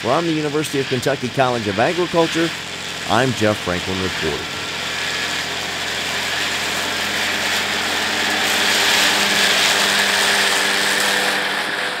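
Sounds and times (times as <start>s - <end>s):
tractor driving through dry grass: 0.0s - 12.0s
tractor engine running: 0.0s - 12.0s.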